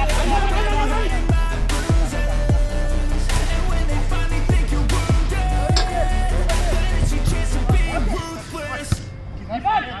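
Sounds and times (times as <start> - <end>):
men calling out: 0.0 - 4.2, 5.2 - 8.9
background music: 0.0 - 10.0.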